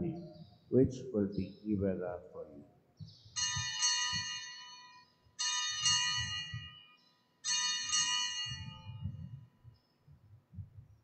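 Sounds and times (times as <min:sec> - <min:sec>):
altar bells ringing: 0:03.4 - 0:09.5.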